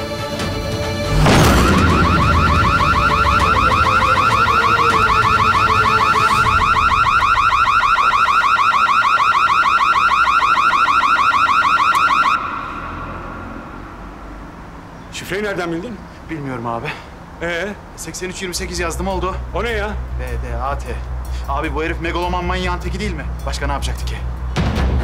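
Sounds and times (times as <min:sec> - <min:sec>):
bang: 0:01.0 - 0:05.0
burglar alarm siren warbling: 0:01.3 - 0:14.4.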